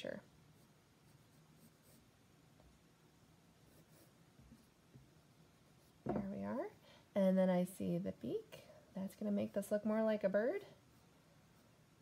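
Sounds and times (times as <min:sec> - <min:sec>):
pencil scratching on paper: 0:00.6 - 0:02.1, 0:03.6 - 0:04.8.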